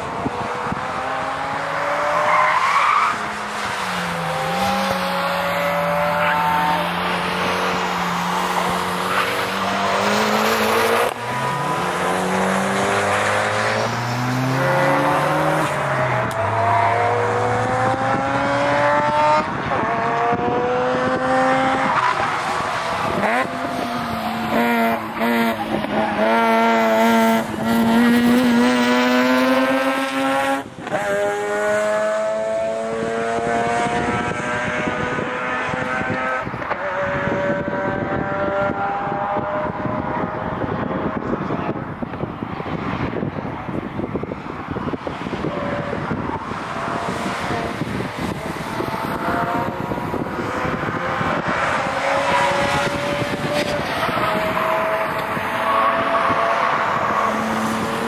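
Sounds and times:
car engine revving hard: 0:03.2 - 0:41.4, 0:45.3 - 0:58.0.

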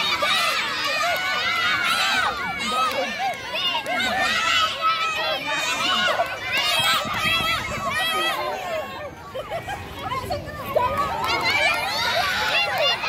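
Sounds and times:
children shouting and cheering: 0:00.0 - 0:13.0.

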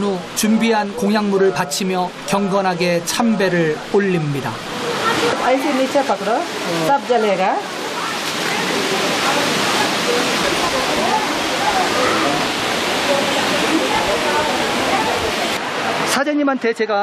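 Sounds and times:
faint voices: 0:00.0 - 0:16.1
running water rushing: 0:00.0 - 0:17.0.

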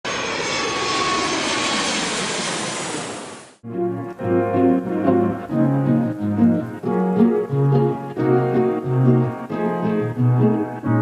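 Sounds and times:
jet engine roar: 0:00.0 - 0:03.6
piano music: 0:03.6 - 0:11.0.

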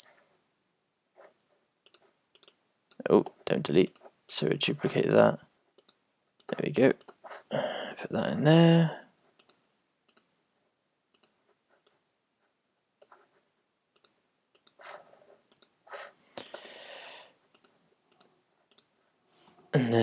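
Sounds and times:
computer mouse clicks: 0:01.8 - 0:04.1, 0:05.8 - 0:07.2, 0:09.4 - 0:10.3, 0:11.1 - 0:12.0, 0:13.9 - 0:16.7, 0:17.5 - 0:18.9.

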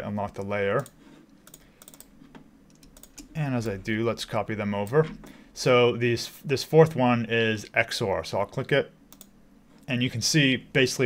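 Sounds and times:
keyboard and mouse clicks: 0:00.8 - 0:03.4, 0:09.1 - 0:09.4.

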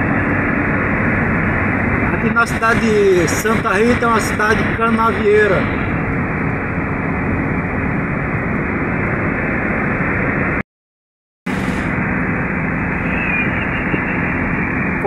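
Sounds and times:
car road and engine noise: 0:00.0 - 0:10.6, 0:11.4 - 0:15.0.

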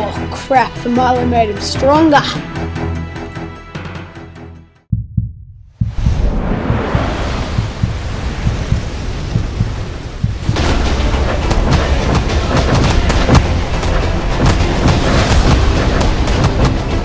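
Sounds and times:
deep rumble: 0:04.9 - 0:17.0
rapid sharp impact hits: 0:05.8 - 0:17.0.

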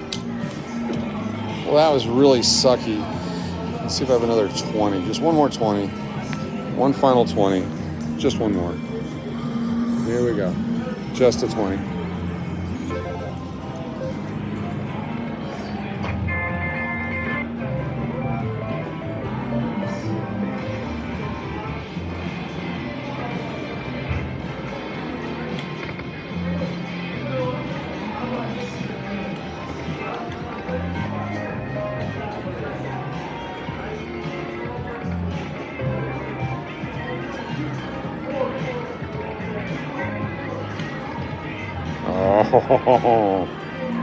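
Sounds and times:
music with steady bass line: 0:16.0 - 0:23.0
slot machine electronic sounds: 0:16.2 - 0:20.4.

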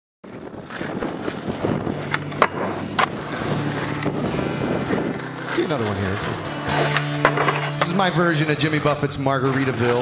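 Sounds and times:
skateboard wheels rolling on asphalt: 0:00.2 - 0:10.0
skateboard clacks: 0:00.3 - 0:04.1, 0:05.1 - 0:10.0.

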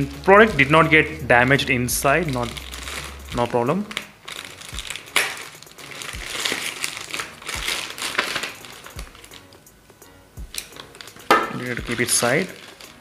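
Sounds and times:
plastic bag crinkling: 0:01.8 - 0:09.6, 0:10.4 - 0:13.0
knife cutting plastic: 0:03.9 - 0:09.6.

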